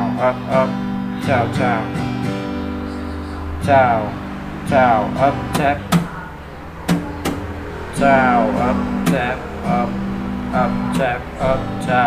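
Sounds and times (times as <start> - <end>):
guitar chord ringing: 0.0 - 12.0
slap taps on guitar strings: 6.9 - 7.4.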